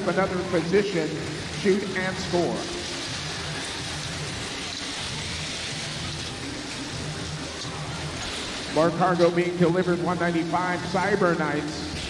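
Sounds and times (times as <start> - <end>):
crowd din in arena: 0.0 - 12.0.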